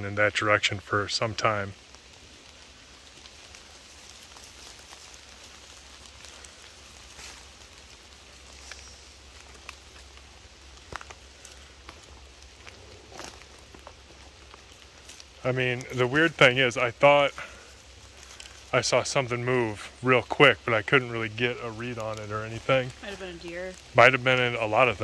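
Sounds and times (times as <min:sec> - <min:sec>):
light ticks and rustles: 0:00.0 - 0:25.0
soft woodland hush: 0:00.0 - 0:25.0.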